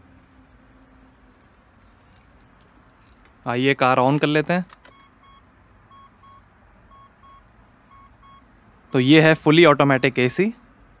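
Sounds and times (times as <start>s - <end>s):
dashboard warning chime double beep: 5.0s - 8.4s.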